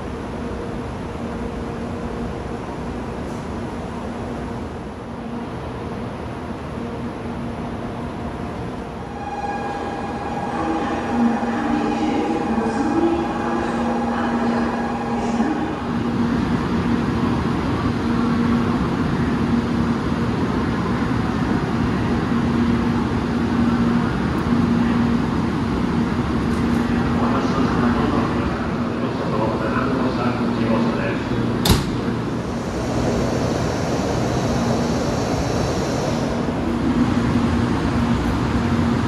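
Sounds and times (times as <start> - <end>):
train equipment hum and rumble: 0.0 - 39.0
high steady whine: 31.8 - 39.0.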